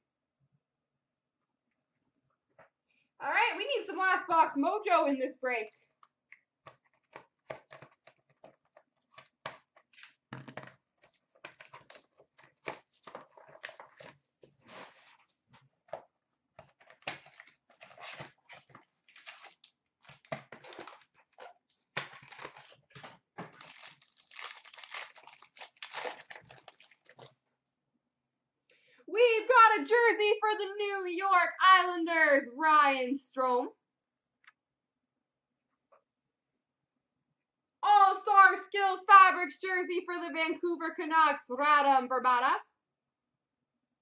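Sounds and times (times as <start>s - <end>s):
cards rustling: 6.7s - 27.4s
card wrappers tearing and crinkling: 11.0s - 15.0s, 16.6s - 27.3s.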